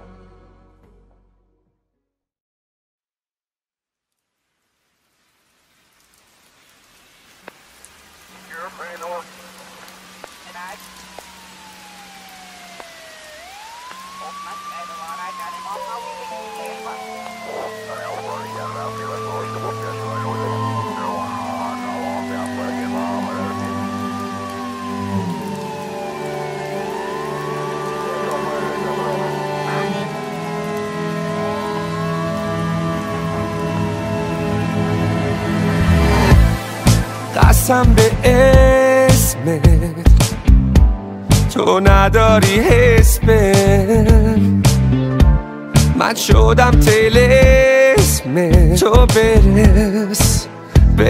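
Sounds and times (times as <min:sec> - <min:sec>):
rain hiss with drop ticks: 0:04.0 - 0:45.0
gliding synth tone: 0:13.0 - 0:36.8
synth bass and chords: 0:16.2 - 0:51.0.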